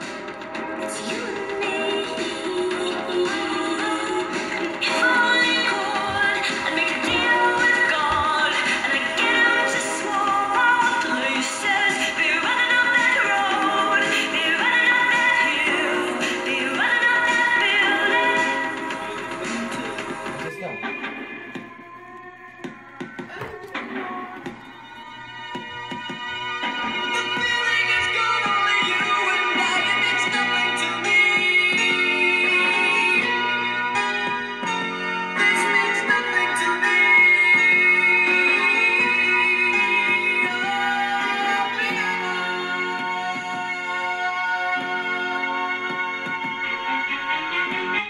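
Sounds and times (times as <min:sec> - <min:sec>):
vinyl record music: 0:00.0 - 0:48.0.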